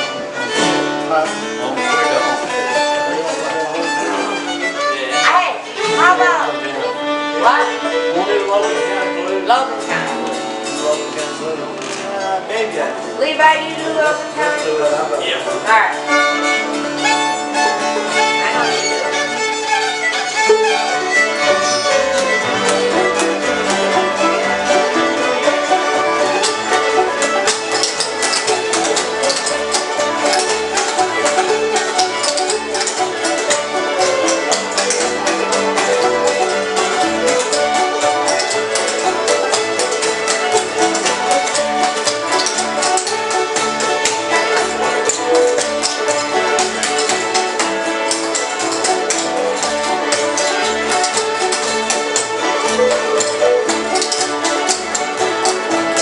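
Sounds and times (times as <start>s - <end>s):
fiddles and acoustic guitars: 0.0s - 56.0s.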